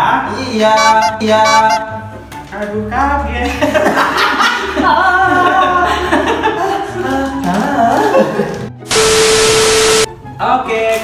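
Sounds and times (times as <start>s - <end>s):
background music with bass line: 0.0s - 10.8s
young men laughing loudly: 3.5s - 7.1s.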